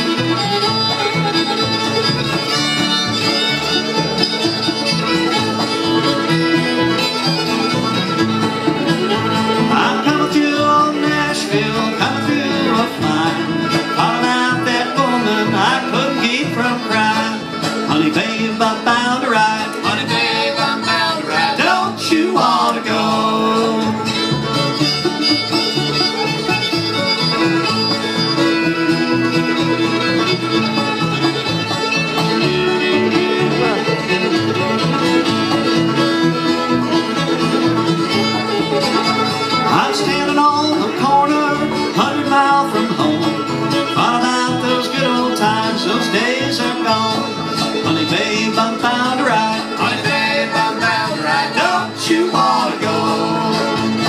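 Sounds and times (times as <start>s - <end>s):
acoustic guitar: 0.0s - 54.0s
banjo: 0.0s - 54.0s
fiddle: 0.0s - 54.0s
upright bass: 0.0s - 54.0s.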